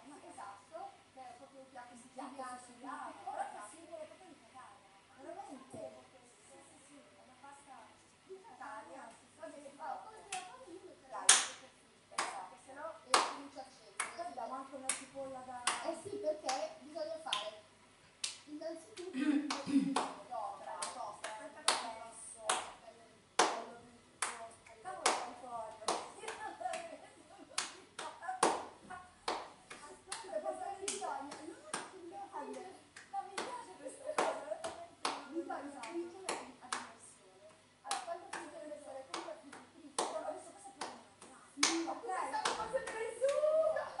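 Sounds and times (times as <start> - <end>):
hands clapping: 11.3 - 11.6, 12.2 - 12.4, 13.1 - 14.2, 14.9 - 16.7, 17.3 - 17.6, 18.2 - 20.2, 20.8 - 22.8, 23.4 - 26.9, 27.6 - 33.6, 34.2 - 36.9, 37.9 - 40.2, 40.8 - 43.5.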